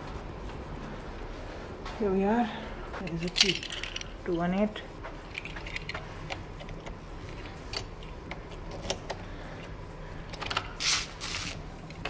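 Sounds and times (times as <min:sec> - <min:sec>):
key rustling in plastic sleeve: 0:10.8 - 0:11.6.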